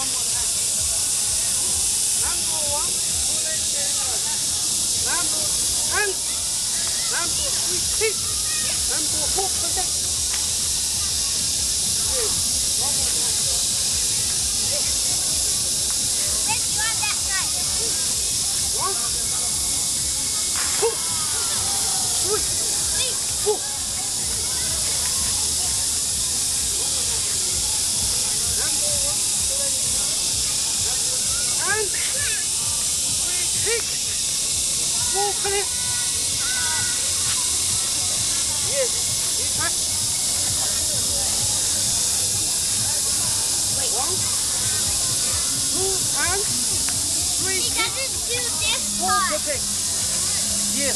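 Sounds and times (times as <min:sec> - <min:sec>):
steady high-pitched hiss: 0:00.0 - 0:50.9.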